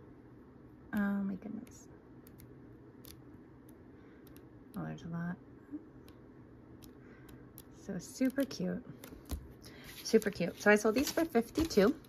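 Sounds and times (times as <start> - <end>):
paper folders handled: 9.1 - 12.0.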